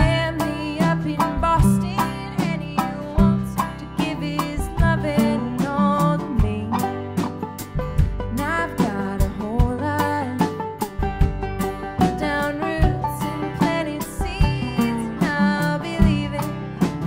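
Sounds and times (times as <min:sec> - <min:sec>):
woman singing: 0:00.0 - 0:07.0, 0:08.3 - 0:10.8, 0:12.0 - 0:17.0
string band playing: 0:00.0 - 0:17.0.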